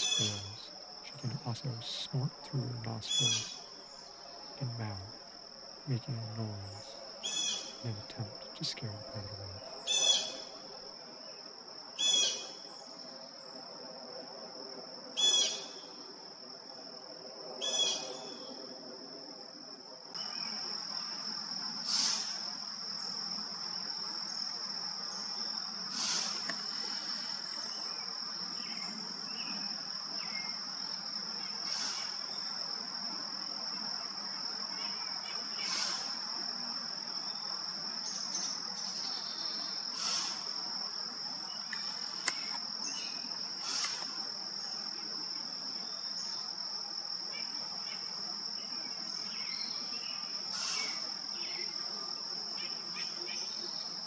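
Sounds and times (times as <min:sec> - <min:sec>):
high-pitched insect drone: 0:00.0 - 0:10.8
deer alarm snorts: 0:40.0 - 0:40.4.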